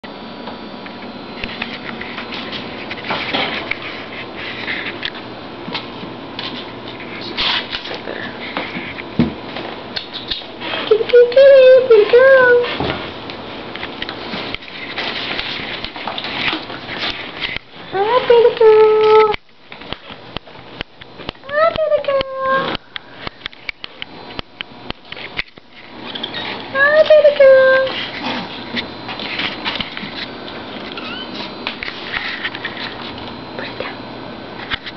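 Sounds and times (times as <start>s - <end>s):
scuffling and rustling: 14.2s - 17.6s.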